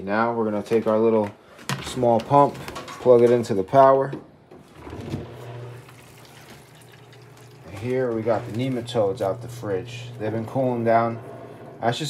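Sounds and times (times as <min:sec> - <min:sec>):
water pump humming: 0:04.6 - 0:12.0
churning water: 0:04.8 - 0:10.4.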